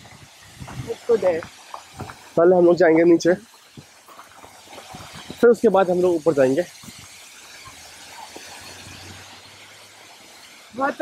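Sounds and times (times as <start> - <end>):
waterfall rushing: 0.0 - 11.0.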